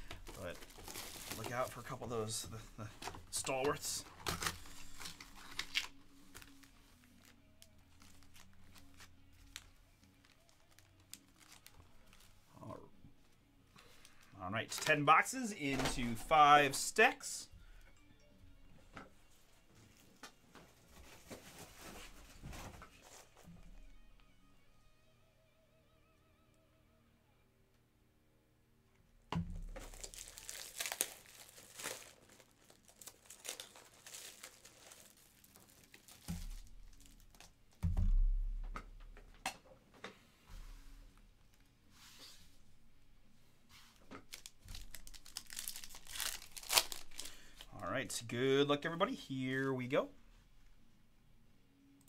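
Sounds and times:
card wrappers crinkling and tearing: 0.0 - 12.8, 13.7 - 17.3, 29.6 - 37.8, 44.2 - 47.8
faint background music: 0.0 - 52.0.

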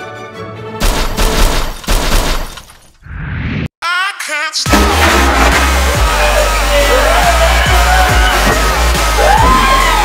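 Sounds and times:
loud harsh crashing: 4.7 - 9.9.

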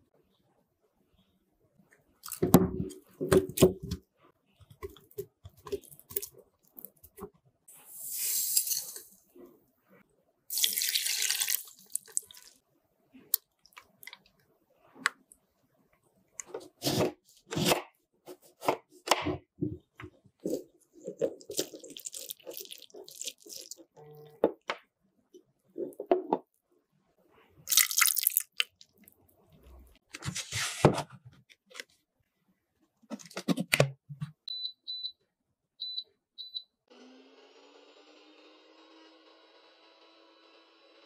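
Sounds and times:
blender control panel beeps: 34.5 - 35.2, 35.8 - 36.7
blender motor running: 36.9 - 41.0.

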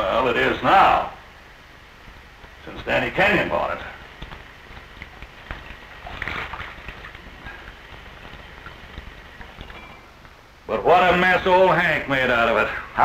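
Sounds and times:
film soundtrack hiss: 0.0 - 13.0
soft handling rustles: 1.9 - 10.5.

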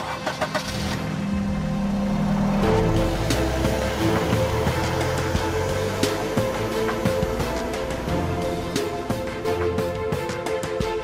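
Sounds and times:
car engine rumbling: 0.0 - 10.7
background music sustained tones: 0.4 - 11.0.

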